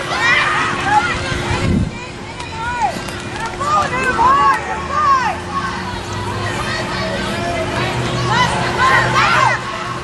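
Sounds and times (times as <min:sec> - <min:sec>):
women shouting: 0:03.6 - 0:10.0.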